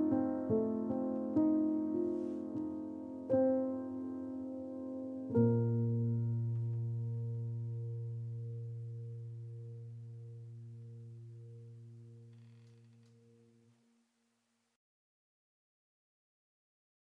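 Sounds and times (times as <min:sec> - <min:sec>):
low piano chord ringing: 0:00.0 - 0:12.4.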